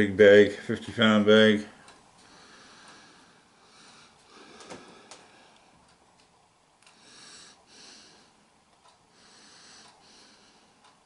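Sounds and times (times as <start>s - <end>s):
soft breathing: 1.8s - 6.0s, 6.8s - 11.0s.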